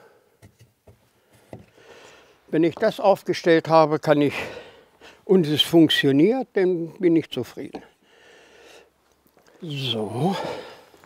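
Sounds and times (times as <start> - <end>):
faint wooden knocks and taps: 0.4 - 1.8.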